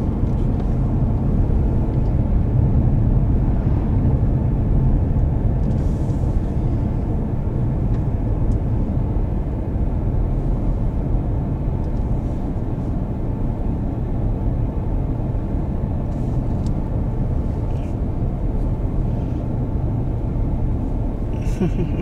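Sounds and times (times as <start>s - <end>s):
car road and engine rumble: 0.0s - 22.0s.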